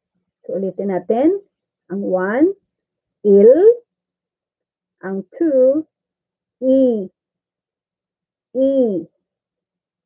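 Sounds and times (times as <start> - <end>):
woman saying a drawn-out syllable: 3.3 - 3.8, 5.0 - 5.9, 6.6 - 7.1, 8.6 - 9.1.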